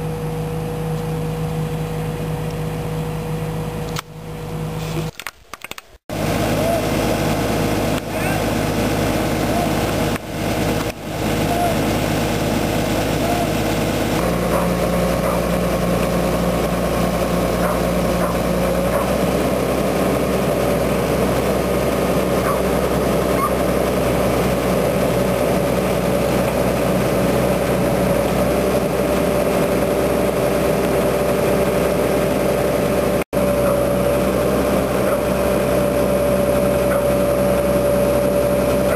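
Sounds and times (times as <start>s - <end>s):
lifting machine engine running: 6.1s - 38.9s.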